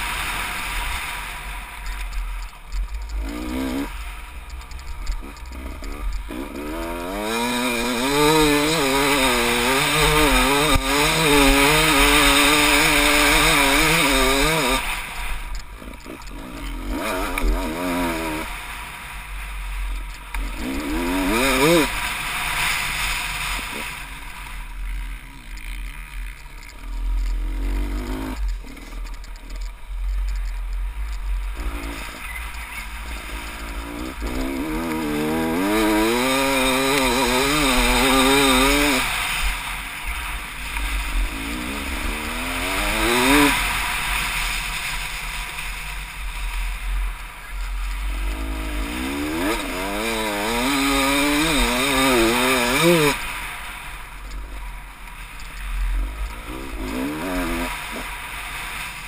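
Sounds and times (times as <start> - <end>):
dirt bike engine revving: 0.0 - 54.6, 55.2 - 59.0.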